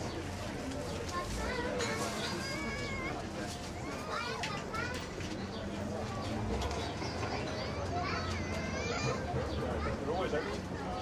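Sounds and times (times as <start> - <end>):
voices chattering: 0.0 - 11.0.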